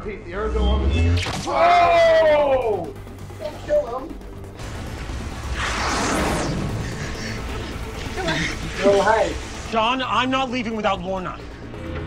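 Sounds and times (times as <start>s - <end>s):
low rumbling music: 0.0s - 12.0s.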